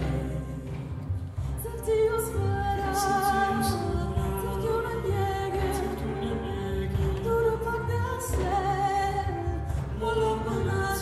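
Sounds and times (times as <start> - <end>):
orchestra playing: 0.0 - 11.0
woman singing with vibrato: 0.0 - 11.0.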